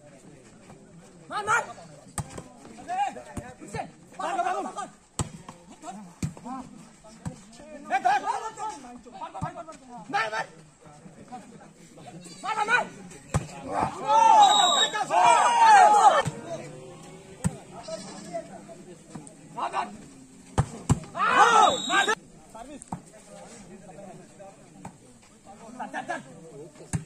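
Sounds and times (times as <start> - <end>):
spectators calling out: 13.6 - 18.8, 21.0 - 22.2
volleyball being hit: 16.2 - 16.5.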